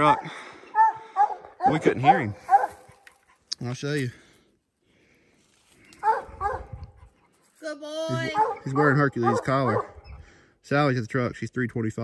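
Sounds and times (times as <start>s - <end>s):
hound barking: 0.0s - 3.5s, 6.0s - 7.2s, 8.1s - 10.0s.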